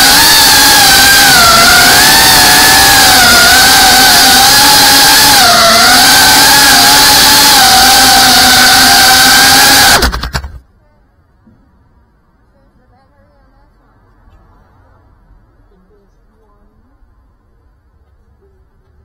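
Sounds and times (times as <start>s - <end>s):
drone propellers whining: 0.0s - 10.6s.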